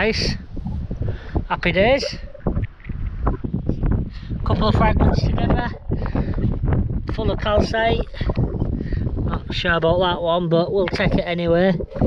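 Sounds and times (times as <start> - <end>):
gusty wind buffeting microphone: 0.0 - 12.0.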